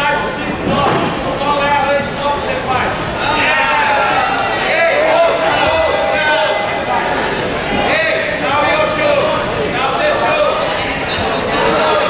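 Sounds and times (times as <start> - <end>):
people shouting: 3.2 - 9.3.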